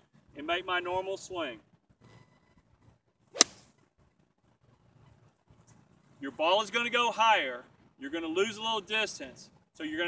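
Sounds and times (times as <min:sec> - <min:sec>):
golf club striking ball: 0:03.4 - 0:03.6.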